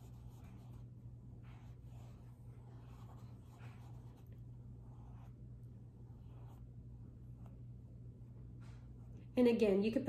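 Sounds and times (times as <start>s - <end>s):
paintbrush swishing on paper: 0.0s - 7.7s.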